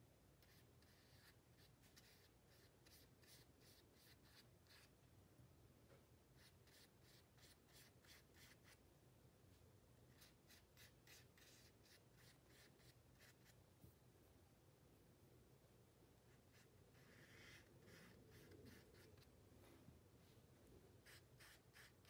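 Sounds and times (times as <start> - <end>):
paintbrush strokes on paper: 0.4 - 4.9, 6.4 - 8.8, 9.5 - 14.0, 16.2 - 22.0.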